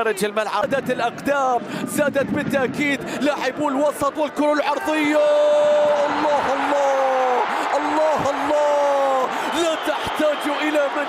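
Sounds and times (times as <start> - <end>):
commentator excited speech: 0.0 - 11.0
stadium crowd noise: 0.0 - 11.0
commentator excited shout: 4.6 - 11.0.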